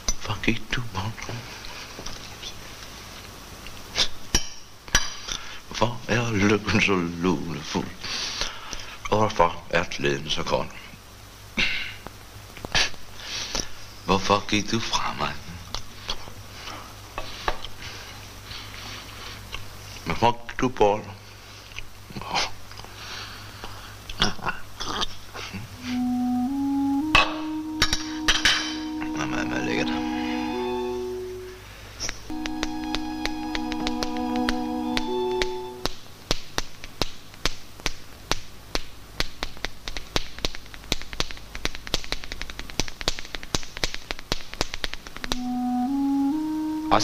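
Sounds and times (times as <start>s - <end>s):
low hum: 25.7s - 31.7s, 32.3s - 35.9s
held musical note: 25.8s - 31.7s, 32.3s - 35.9s, 45.2s - 47.0s
finger snaps: 32.4s - 45.5s.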